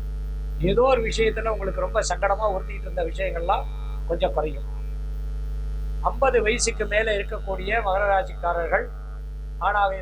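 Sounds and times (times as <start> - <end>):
low electrical mains hum: 0.0 - 10.0
man speaking: 0.6 - 4.9, 6.0 - 10.0.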